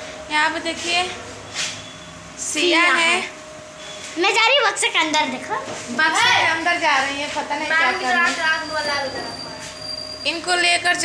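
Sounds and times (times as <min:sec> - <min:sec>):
high-pitched whine: 0:07.5 - 0:11.0.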